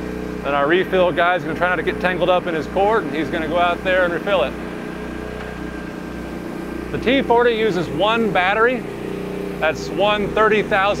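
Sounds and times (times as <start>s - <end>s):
generator engine running: 0.0s - 11.0s.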